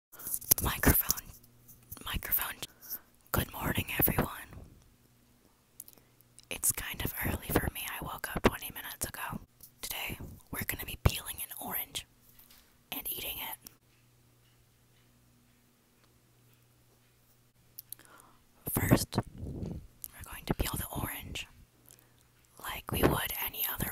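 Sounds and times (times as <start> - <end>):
person whispering close-up: 0.2 - 4.7, 6.5 - 12.1, 12.9 - 13.7, 18.7 - 21.6, 22.6 - 23.9
faint low hum: 0.2 - 23.9.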